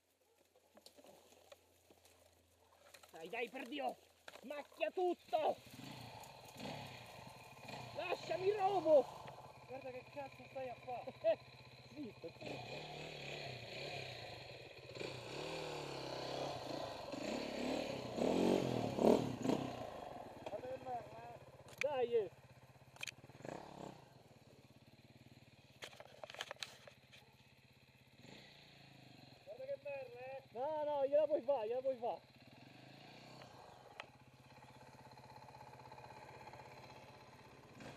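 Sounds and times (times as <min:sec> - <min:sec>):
faint motorcycle engine: 0:00.0 - 0:37.9.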